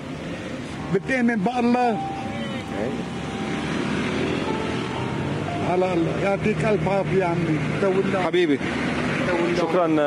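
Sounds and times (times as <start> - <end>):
vehicle engine and traffic: 0.0 - 10.0.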